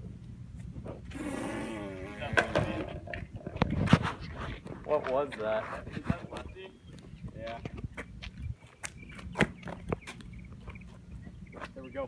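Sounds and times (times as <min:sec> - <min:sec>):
footsteps on asphalt: 0:04.2 - 0:12.0.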